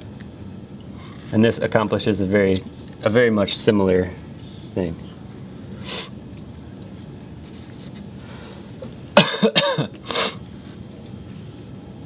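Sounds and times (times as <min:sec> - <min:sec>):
man coughing: 0:09.2 - 0:10.4.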